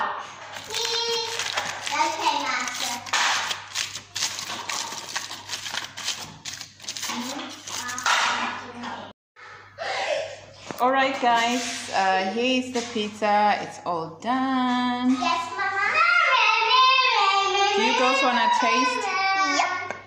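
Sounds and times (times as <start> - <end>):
children talking: 0.6 - 3.1, 15.1 - 19.9.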